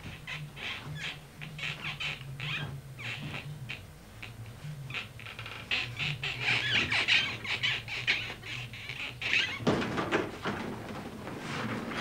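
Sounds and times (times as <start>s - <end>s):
sofa cushions squeaking and rustling: 0.0s - 9.7s.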